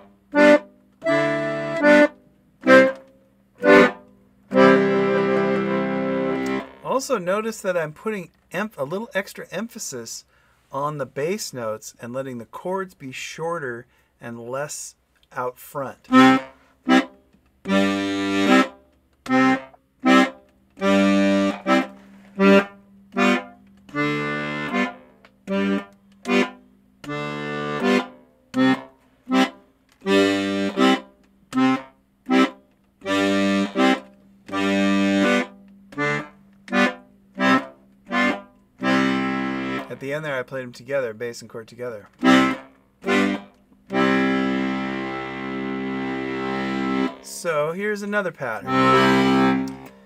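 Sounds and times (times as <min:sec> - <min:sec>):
accordion bass and chord pattern: 0:00.0 - 0:50.0.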